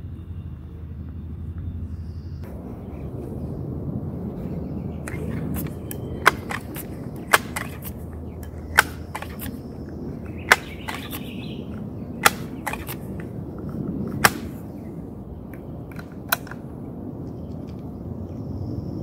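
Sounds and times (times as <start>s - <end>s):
air rifle pump clicks: 5.1s - 13.3s, 14.1s - 14.6s, 15.5s - 16.6s.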